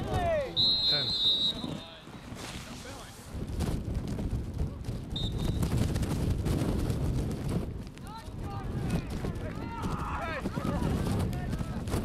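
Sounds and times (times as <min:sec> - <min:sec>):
wind buffeting microphone: 0:00.0 - 0:12.0
referee's whistle blast: 0:00.5 - 0:01.9.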